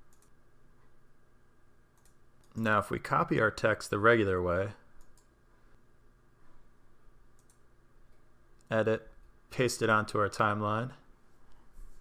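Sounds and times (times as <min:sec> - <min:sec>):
computer mouse clicks: 0:00.0 - 0:00.4, 0:02.0 - 0:02.6, 0:05.0 - 0:05.3, 0:07.3 - 0:08.2
low room hum: 0:00.0 - 0:12.0.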